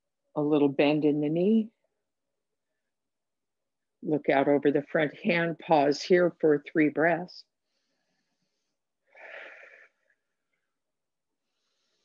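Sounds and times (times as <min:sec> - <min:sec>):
woman breathing: 0:07.5 - 0:12.0.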